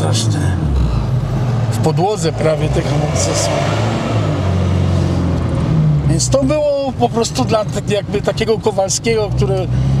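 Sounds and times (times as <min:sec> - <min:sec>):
car engine drone: 0:00.0 - 0:10.0
road noise: 0:00.0 - 0:10.0.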